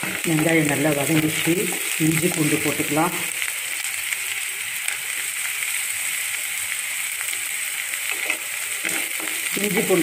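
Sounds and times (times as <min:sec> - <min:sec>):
vegetables sizzling in hot oil: 0:00.0 - 0:10.0.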